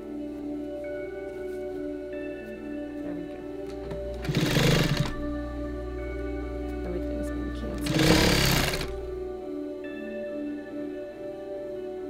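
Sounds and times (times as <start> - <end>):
background music: 0.0 - 12.0
electric sewing machine stitching: 4.1 - 5.3, 7.8 - 9.0.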